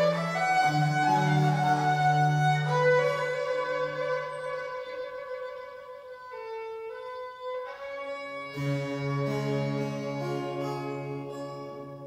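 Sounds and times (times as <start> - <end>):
baroque chamber ensemble: 0.0 - 7.0, 7.6 - 12.0
violin long bowed notes: 0.0 - 12.0.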